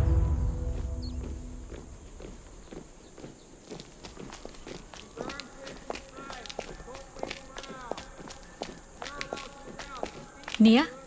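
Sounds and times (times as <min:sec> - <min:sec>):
orchestral film score chords: 0:00.0 - 0:02.2
footsteps on dirt: 0:00.6 - 0:11.0.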